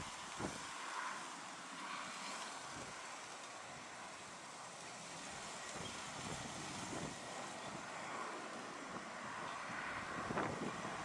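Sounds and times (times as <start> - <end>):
wind hiss on microphone: 0.0 - 11.0.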